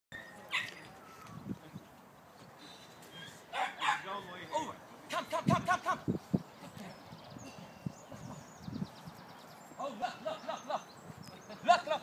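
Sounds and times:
dog barking: 0:03.5 - 0:04.1.

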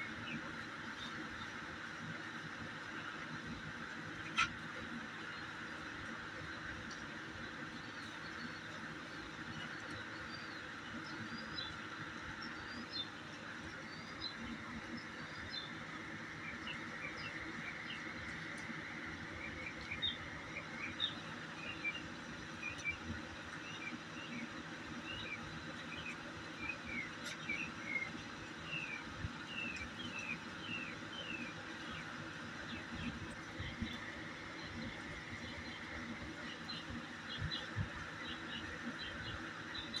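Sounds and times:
small birds chirping: 0:00.0 - 0:40.0.

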